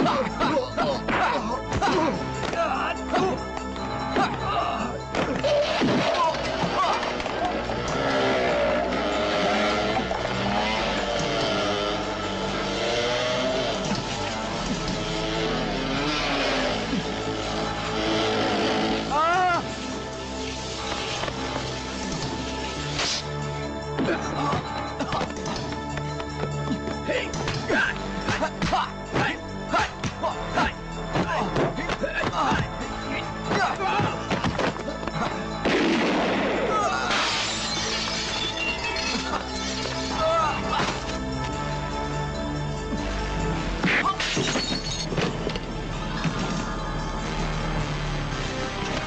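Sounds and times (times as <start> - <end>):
film music score: 0.0 - 49.0
dirt bike engines revving: 6.0 - 23.4
window glass shattering: 35.7 - 40.2, 43.9 - 45.4.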